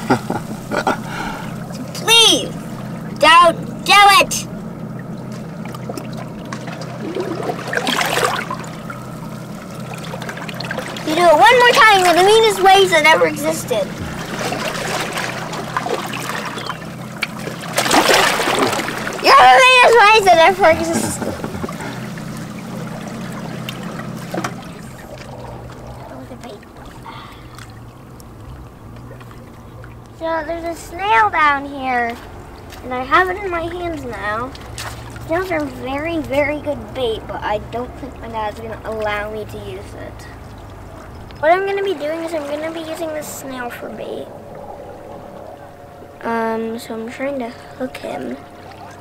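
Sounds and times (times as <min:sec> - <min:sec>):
low drone: 0:00.0 - 0:31.0, 0:38.9 - 0:49.0
seawater sloshing and dripping: 0:00.0 - 0:49.0
steady low hum: 0:00.0 - 0:49.0
water splashes: 0:00.0 - 0:49.0.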